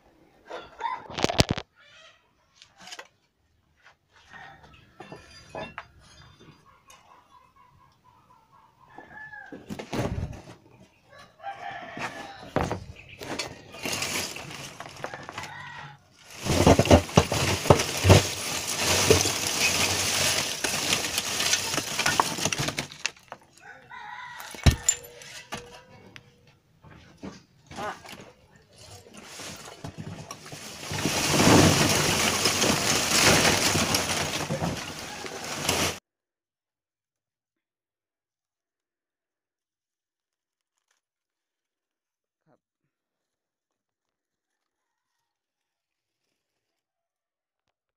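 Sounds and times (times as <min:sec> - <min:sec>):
rooster crowing: 0:11.1 - 0:12.7, 0:15.0 - 0:16.2, 0:23.6 - 0:25.9, 0:34.9 - 0:35.7
charcoal lumps clattering: 0:11.8 - 0:23.6, 0:27.7 - 0:36.0.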